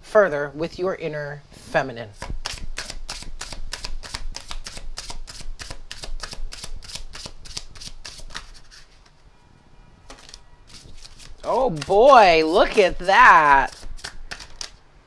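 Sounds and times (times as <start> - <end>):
cards being shuffled: 2.2 - 9.2, 10.1 - 14.8.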